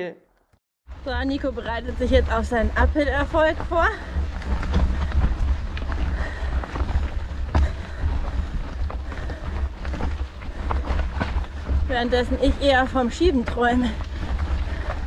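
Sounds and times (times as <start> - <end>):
bike tyres crunching on gravel: 1.0 - 15.0.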